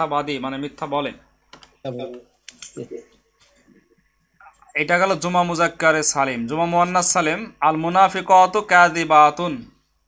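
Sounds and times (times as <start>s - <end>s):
man speaking: 0.0s - 3.2s, 4.4s - 9.8s
faint computer clicks: 1.5s - 3.8s.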